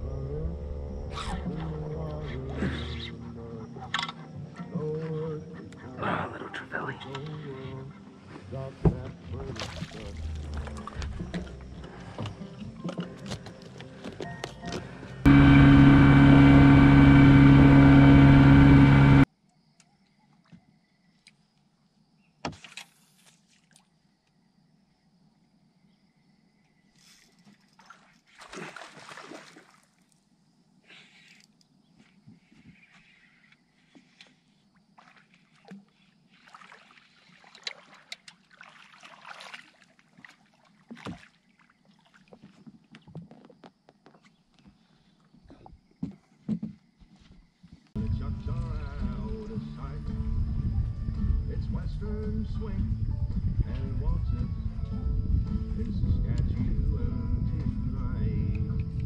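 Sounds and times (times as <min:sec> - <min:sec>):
water sounds: 0:06.7 - 0:13.0, 0:27.8 - 0:30.2, 0:34.9 - 0:42.6
electric trolling motor humming: 0:15.2 - 0:19.3.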